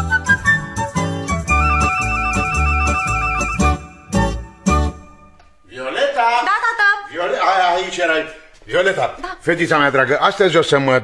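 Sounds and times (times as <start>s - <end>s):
instrumental music with high trill: 0.0s - 5.4s.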